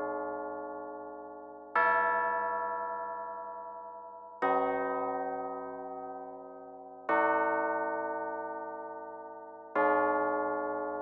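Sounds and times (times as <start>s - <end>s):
bell-like keyboard chords: 0.0s - 1.6s.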